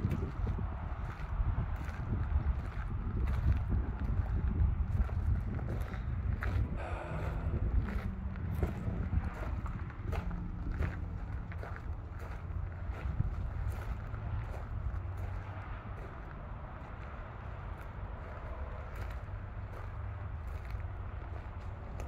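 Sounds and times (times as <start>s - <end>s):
footsteps on gravel: 0.0s - 22.0s
wind buffeting microphone: 0.0s - 22.0s.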